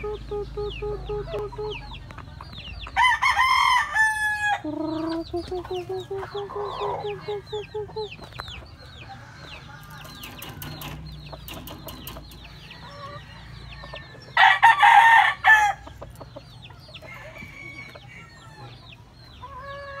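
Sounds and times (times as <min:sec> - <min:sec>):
rooster crowing: 0:03.0 - 0:04.7, 0:12.7 - 0:15.8, 0:17.1 - 0:18.8.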